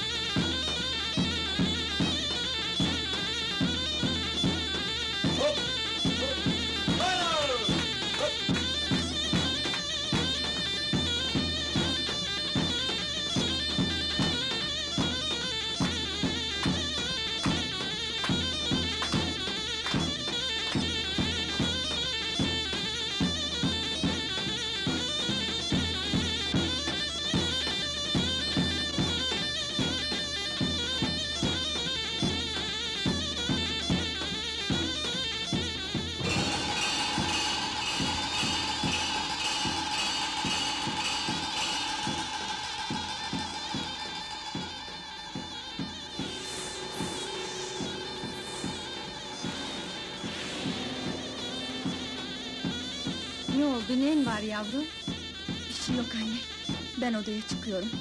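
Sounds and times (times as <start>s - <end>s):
music of long held notes: 0.0s - 58.0s
shrill reedy shawm melody: 0.0s - 58.0s.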